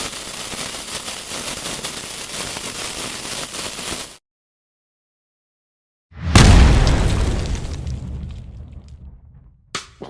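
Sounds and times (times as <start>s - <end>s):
short sharp hit: 6.2s - 7.2s
deep cinematic boom: 6.2s - 9.7s.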